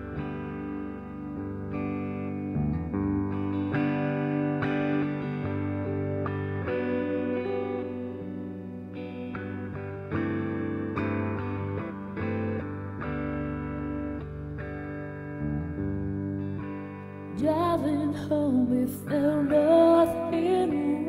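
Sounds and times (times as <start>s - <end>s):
guitar chords through effects: 0.0s - 21.0s.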